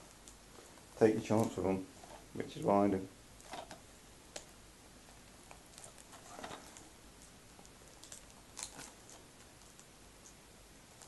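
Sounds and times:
packaging crinkle: 0.2 - 2.3, 3.4 - 10.3.

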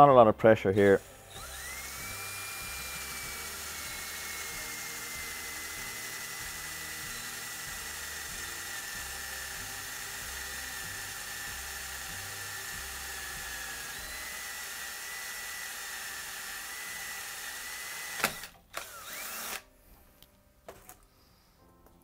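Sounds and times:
cordless drill whining: 0.8 - 19.7.

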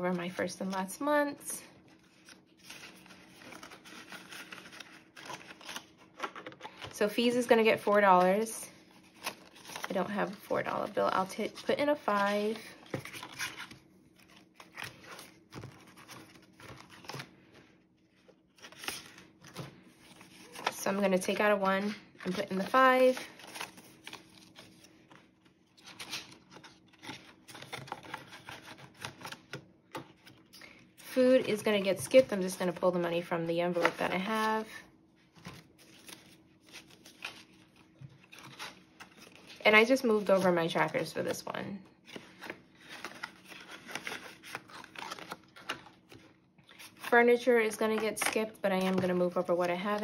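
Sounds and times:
plastic and paper rustling: 1.8 - 30.5, 31.4 - 50.0
paper rustling: 1.9 - 6.9, 33.7 - 41.4.

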